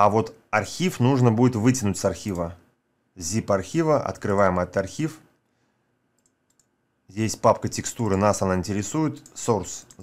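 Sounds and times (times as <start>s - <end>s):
computer mouse clicks: 6.2s - 6.8s, 9.1s - 10.0s.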